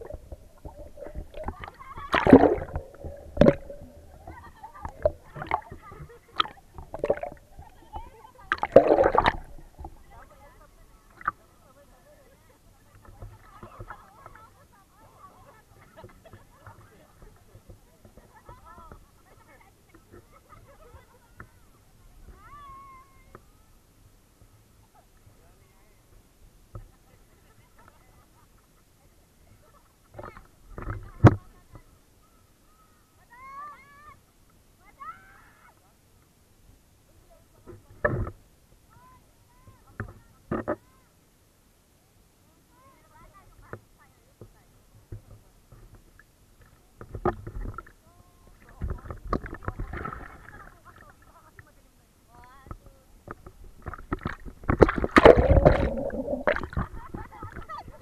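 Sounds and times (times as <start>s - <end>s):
sea water sloshing and splashing: 0.0s - 10.2s, 48.6s - 51.1s, 53.8s - 57.8s.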